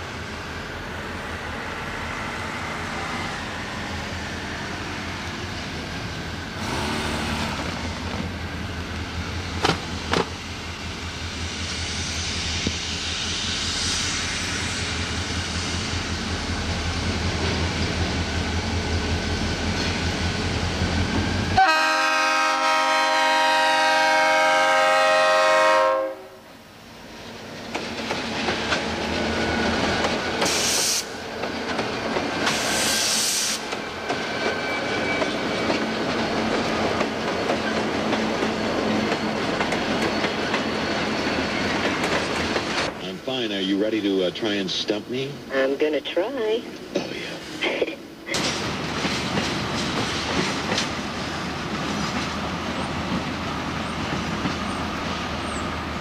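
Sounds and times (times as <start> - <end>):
diesel locomotive engine rumble: 0.0 - 56.0
multi-note air horn: 6.6 - 7.6, 21.6 - 26.4
train wheels clacking over rail joints: 9.5 - 10.4, 27.6 - 43.0, 48.3 - 55.0.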